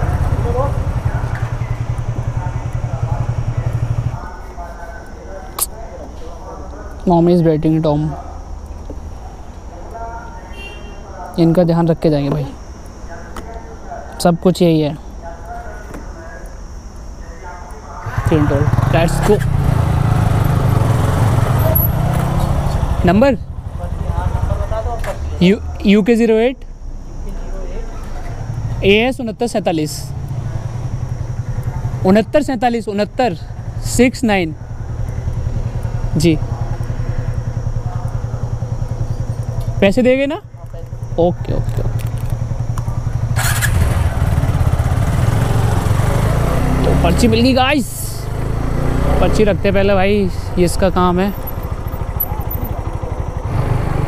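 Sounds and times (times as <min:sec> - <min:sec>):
motorcycle engine at low revs: 0:00.0 - 0:04.4, 0:18.0 - 0:25.4, 0:28.1 - 0:54.0.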